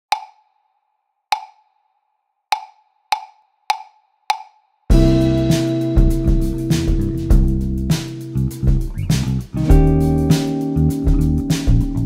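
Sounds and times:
wood-block count-in clicks: 0.1s - 0.5s, 1.4s - 1.7s, 2.5s - 4.6s.

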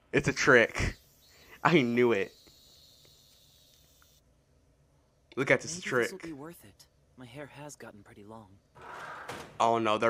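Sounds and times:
faint high steady tone: 0.3s - 4.2s.

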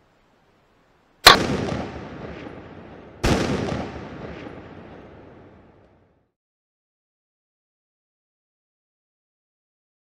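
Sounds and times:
quieter bang: 1.2s - 6.0s
rifle shot with echo: 1.2s - 6.1s.

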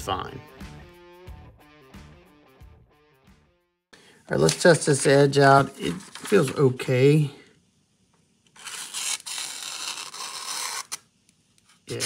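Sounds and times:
knife slicing paper: 8.6s - 11.0s.

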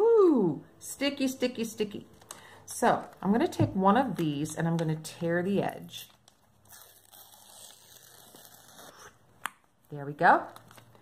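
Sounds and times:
paper being torn by hand: 6.6s - 9.2s.

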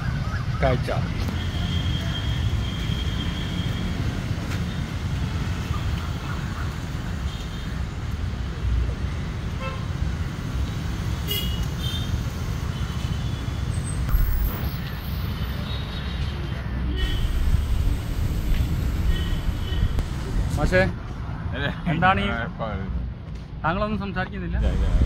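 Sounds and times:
road traffic rumble: 0.0s - 25.0s
vehicle horn toots: 19.0s - 20.0s.

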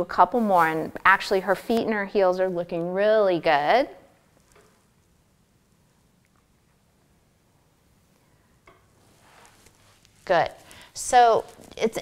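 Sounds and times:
soft rustle: 0.0s - 3.2s, 4.2s - 12.0s.

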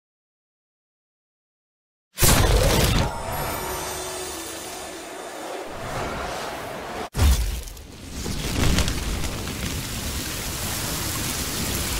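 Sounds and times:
steady rain hiss: 8.7s - 11.9s.

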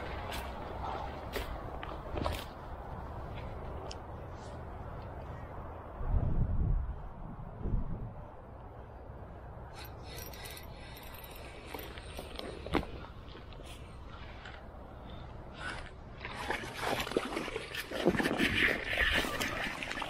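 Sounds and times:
dry grass and clothing rustling: 0.0s - 5.5s, 10.0s - 15.0s.

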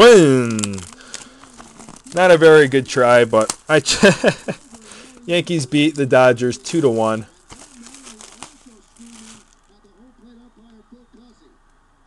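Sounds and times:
plastic wrap crinkle: 0.0s - 9.7s
distant television speech: 2.1s - 11.8s.

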